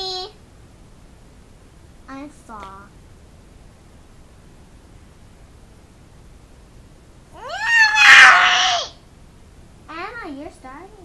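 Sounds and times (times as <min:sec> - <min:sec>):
child squealing high-pitched: 0:07.4 - 0:09.0.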